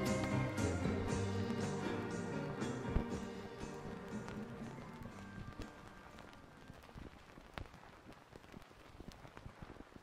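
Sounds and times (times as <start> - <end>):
rock music on vinyl record: 0.0 - 8.6
vinyl crackle and pops: 0.0 - 10.0.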